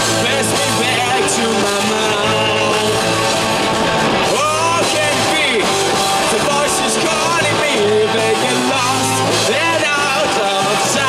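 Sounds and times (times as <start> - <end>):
bending lead guitar line: 0.0 - 11.0
rock band playing live: 0.0 - 11.0.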